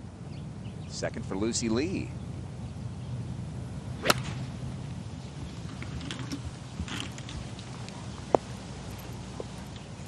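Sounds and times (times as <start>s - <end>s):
low outdoor background: 0.0s - 10.0s
golf club hitting ball: 4.0s - 4.5s.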